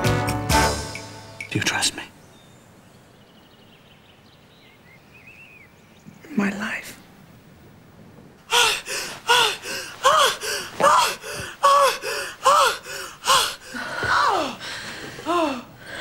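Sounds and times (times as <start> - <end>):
woman's cries of pleasure: 8.5 - 14.6.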